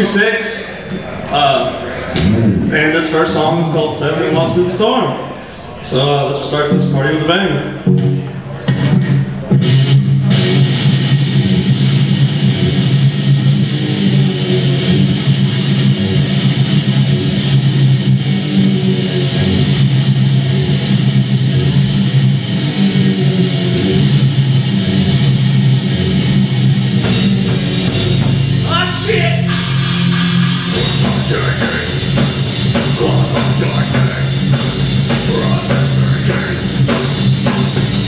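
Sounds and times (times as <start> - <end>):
distorted electric guitars: 0.0 - 6.1, 6.7 - 38.0
bass guitar: 0.0 - 38.0.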